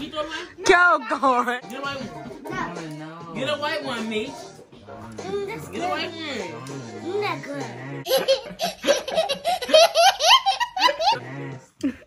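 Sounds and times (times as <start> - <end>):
person laughing: 8.1 - 12.0.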